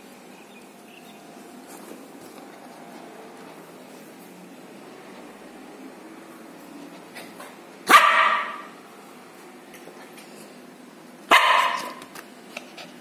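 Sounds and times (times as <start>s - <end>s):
puppy barking: 7.9s - 8.8s, 11.3s - 12.1s.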